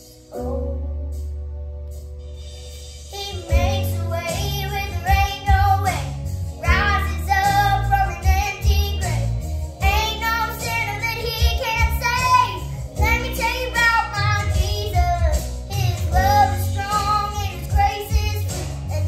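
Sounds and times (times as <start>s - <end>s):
girl singing: 0.0s - 1.1s, 3.1s - 19.0s
instrumental backing track: 0.0s - 19.0s.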